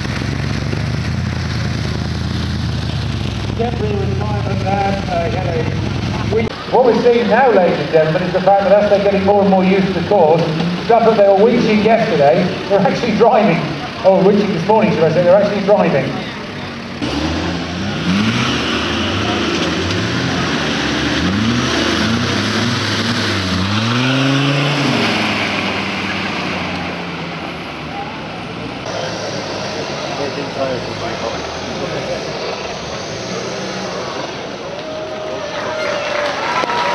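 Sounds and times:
off-road vehicle engine revving: 0.0s - 35.6s.

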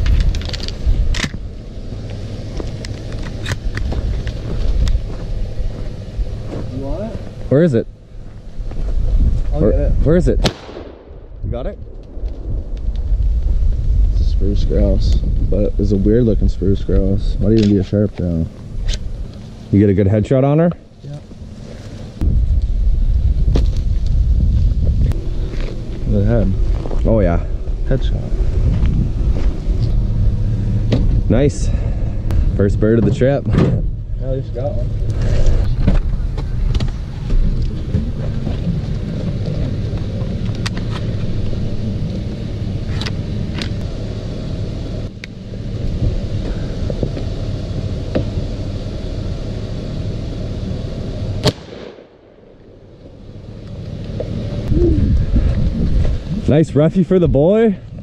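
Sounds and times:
wind buffeting microphone: 8.6s - 17.8s, 22.2s - 43.8s, 54.6s - 58.0s
loud shotgun shot: 10.4s - 11.3s, 51.4s - 52.4s
truck engine idling: 25.2s - 56.3s.

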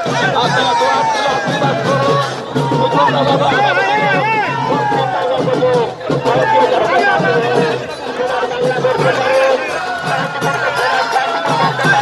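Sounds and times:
crowd noise: 0.0s - 12.0s
music: 0.0s - 12.0s
voices talking and calling out: 0.0s - 12.0s.

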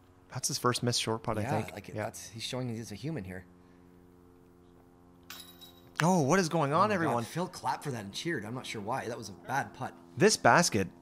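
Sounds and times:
disc striking basket chains: 5.2s - 6.0s.

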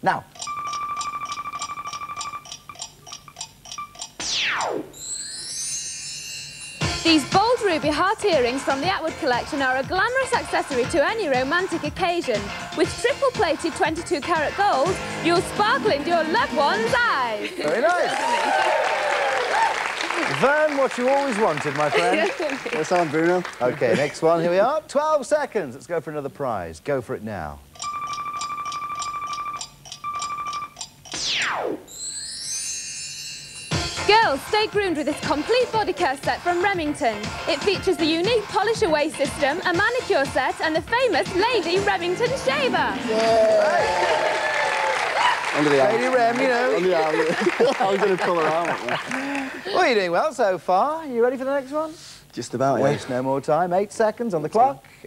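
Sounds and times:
electronic clock ticking: 0.3s - 5.2s, 6.8s - 15.0s, 27.7s - 32.2s
short beeps: 0.4s - 5.1s, 27.8s - 30.9s.

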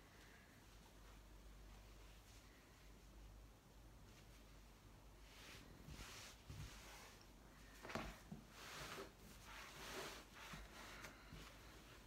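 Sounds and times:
fabric rustling: 3.9s - 12.0s.

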